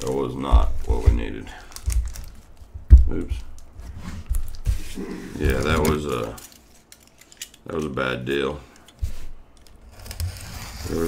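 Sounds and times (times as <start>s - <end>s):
wrapper rustling and crinkling: 0.0s - 7.7s.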